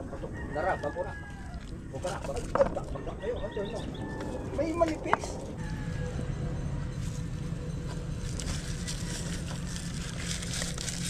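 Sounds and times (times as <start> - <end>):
rooster crowing: 0.0 - 1.9, 2.9 - 4.6, 5.6 - 6.6.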